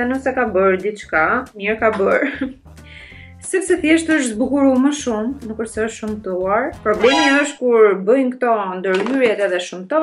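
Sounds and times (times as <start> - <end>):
woman talking: 0.0 - 2.5, 3.4 - 10.0.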